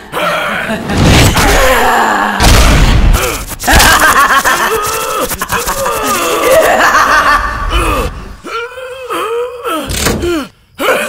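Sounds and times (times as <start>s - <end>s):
person laughing menacingly: 0.2s - 1.0s, 3.2s - 8.5s.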